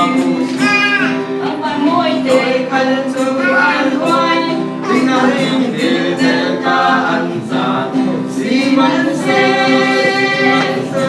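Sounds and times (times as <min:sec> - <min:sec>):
group singing unaccompanied: 0:00.0 - 0:11.0.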